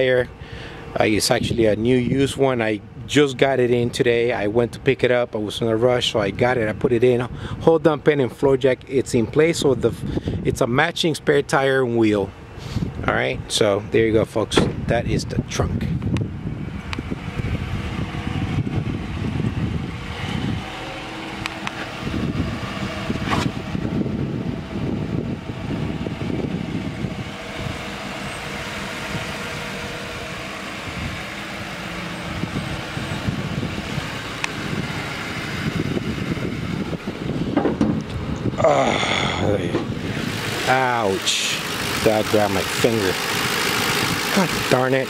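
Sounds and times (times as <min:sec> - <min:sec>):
car engine idling: 0:16.0 - 0:45.0.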